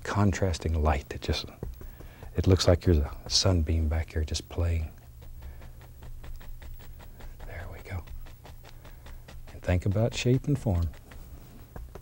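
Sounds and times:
faint low hum: 0.0s - 12.0s
brush tapping on canvas: 0.6s - 12.0s.

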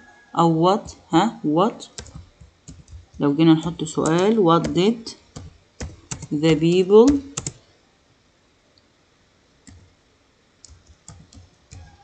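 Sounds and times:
faint keyboard typing: 1.8s - 7.6s, 9.6s - 9.9s, 10.6s - 12.0s.

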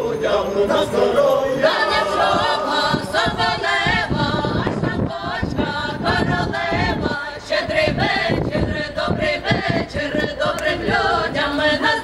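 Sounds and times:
mixed choir singing a carol: 0.0s - 12.0s.

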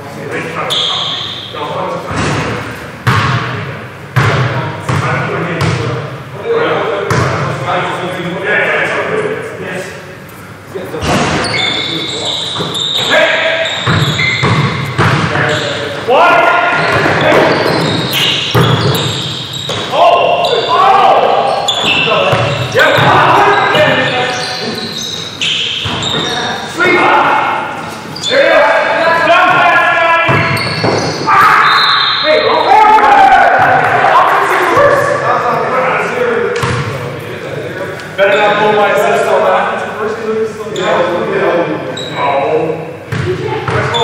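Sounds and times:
basketball bouncing on gym floor: 2.1s - 3.5s, 4.2s - 5.9s, 7.1s - 7.5s, 13.8s - 15.5s, 16.8s - 19.9s, 21.8s - 24.1s, 30.3s - 31.2s, 43.1s - 44.0s
players shouting: 15.2s - 36.2s.

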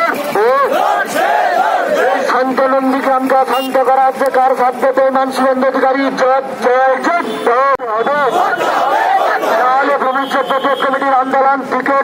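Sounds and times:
crowd chanting: 0.3s - 2.5s, 8.2s - 9.9s
man shouting a slogan: 4.8s - 12.0s.

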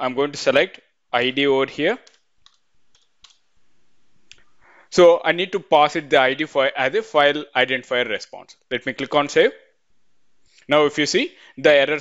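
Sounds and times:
computer keys clicking: 2.0s - 3.4s.

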